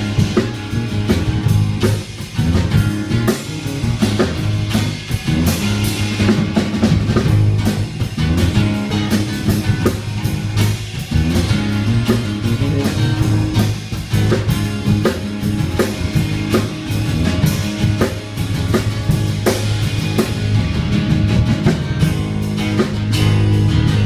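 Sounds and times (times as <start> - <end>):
acoustic guitar: 0.0 - 24.0
drum kit steady beat: 0.0 - 24.0
electric bass: 0.0 - 24.0.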